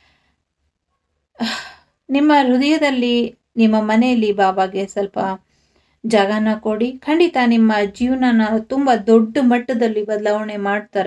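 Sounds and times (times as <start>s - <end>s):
woman breathing: 0.0s - 0.6s, 5.4s - 6.0s
woman speaking: 1.4s - 5.4s, 6.1s - 11.0s.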